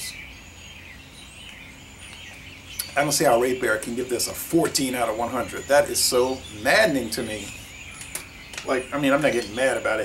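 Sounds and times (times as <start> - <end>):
faint high bird chirps: 0.0 - 10.0.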